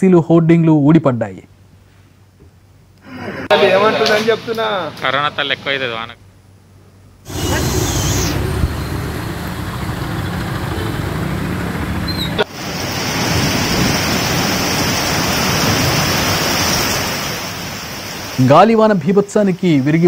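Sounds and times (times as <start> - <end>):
storm wind on microphone: 7.3 - 17.6
heavy rain: 7.3 - 18.8.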